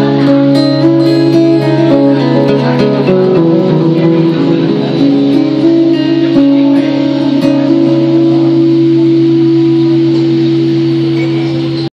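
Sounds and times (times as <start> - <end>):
acoustic guitar chord ringing: 0.0 - 11.9.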